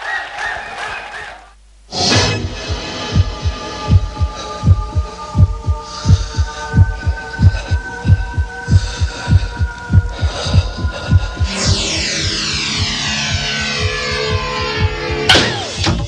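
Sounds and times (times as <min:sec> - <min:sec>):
electronic drone: 0:02.0 - 0:16.0
heartbeat thumps: 0:02.4 - 0:15.3.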